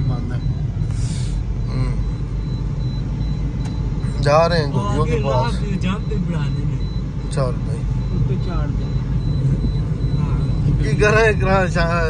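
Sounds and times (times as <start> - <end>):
car engine and road noise: 0.0 - 12.0
man speaking: 4.1 - 8.8, 10.4 - 12.0.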